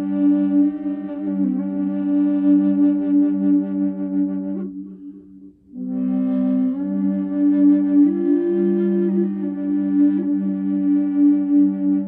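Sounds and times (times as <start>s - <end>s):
drone flute: 0.0s - 12.0s.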